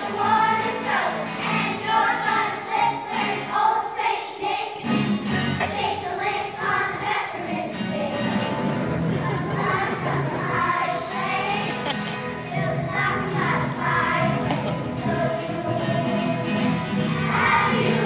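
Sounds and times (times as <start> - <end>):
children's choir singing: 0.0 - 18.0.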